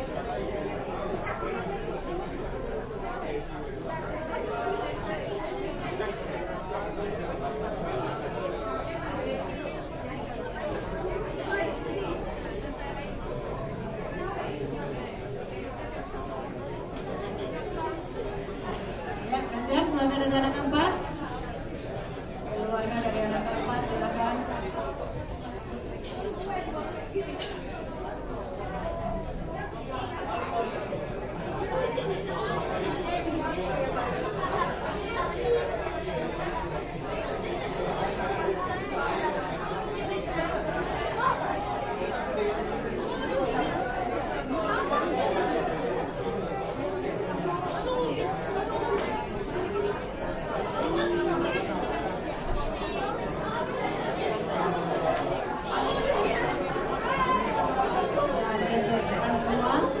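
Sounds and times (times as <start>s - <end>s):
crowd chatter: 0.0s - 60.0s.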